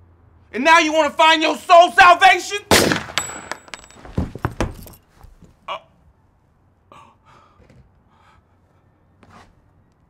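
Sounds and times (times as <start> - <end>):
gunshot: 2.7 - 3.7
dull thuds: 2.7 - 5.4
metallic clinks: 2.9 - 5.1.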